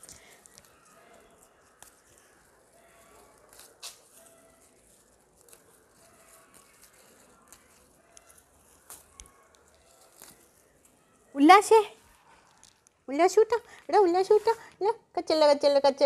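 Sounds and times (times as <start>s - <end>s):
stems snapping: 0.0s - 10.9s
leaves rustling: 0.0s - 14.6s.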